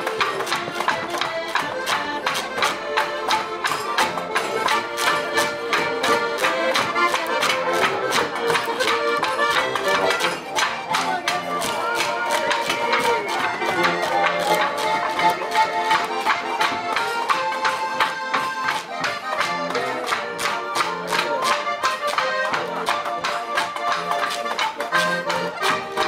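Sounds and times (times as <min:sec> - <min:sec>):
button accordion folk tune: 0:00.0 - 0:26.0
fast percussive beat: 0:00.0 - 0:26.0.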